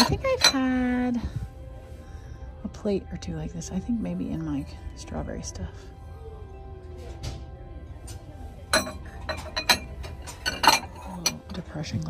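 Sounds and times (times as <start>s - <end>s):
ceramic dishes clinking: 8.7s - 11.7s.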